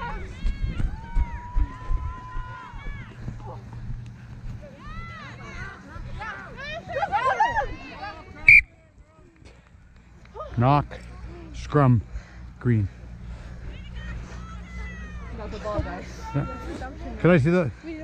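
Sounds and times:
players shouting: 0.0 - 3.8, 13.7 - 16.9
referee whistle blast: 8.4 - 8.7.

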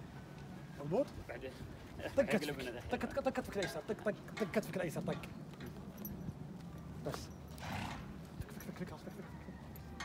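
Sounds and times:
horse blowing through nostrils: 7.6 - 8.1.

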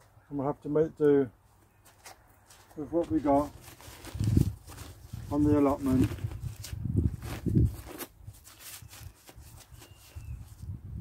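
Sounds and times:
fabric rustling and crackling: 1.9 - 10.2.

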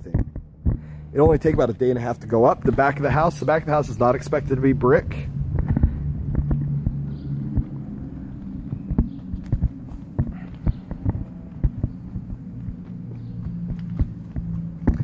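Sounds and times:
footsteps on concrete: 0.0 - 15.0
steady low hum: 0.0 - 15.0.

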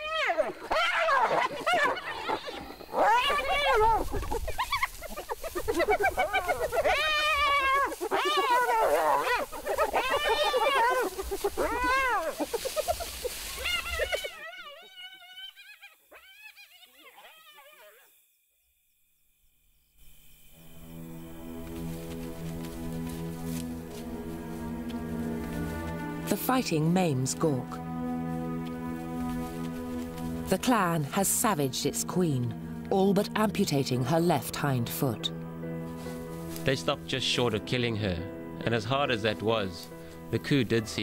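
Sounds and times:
hyenas crying out: 0.0 - 12.8, 13.4 - 18.2
sustained music tones: 19.7 - 41.0.

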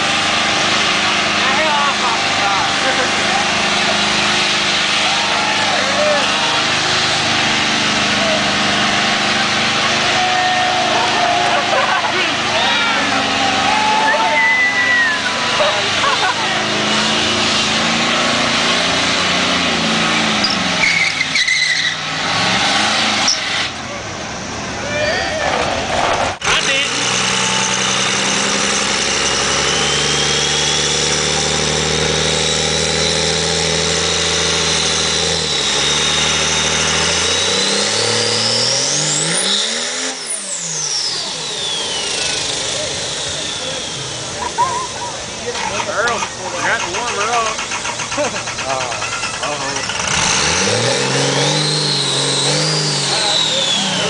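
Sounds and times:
diesel engine with turbo whine: 0.0 - 54.0
diesel truck revving with tyres spinning: 0.0 - 54.0
crowd chatter: 0.7 - 17.4, 41.1 - 50.2, 52.7 - 54.0.

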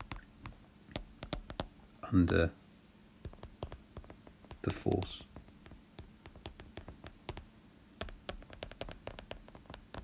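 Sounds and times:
stylus tapping on glass screen: 0.0 - 2.5, 3.2 - 10.0.

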